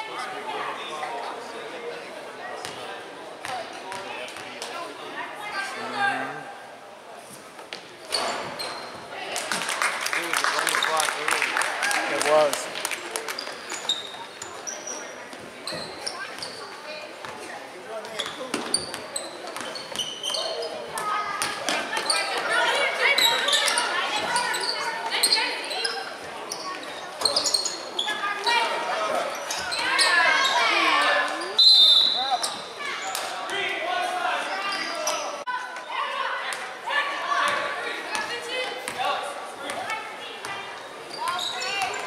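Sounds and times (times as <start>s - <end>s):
sneakers squeaking: 7.7s - 9.1s, 13.3s - 33.3s, 34.4s - 35.4s, 40.4s - 42.0s.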